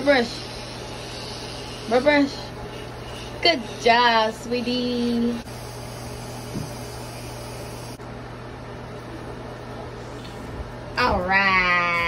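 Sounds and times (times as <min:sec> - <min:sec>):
fan hiss and low hum: 0:00.0 - 0:12.0.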